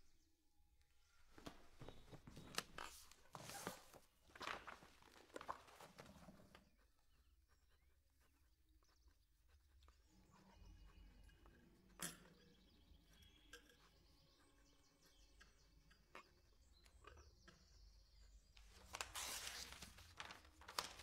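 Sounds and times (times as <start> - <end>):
faint bird chirps: 6.5 - 20.2.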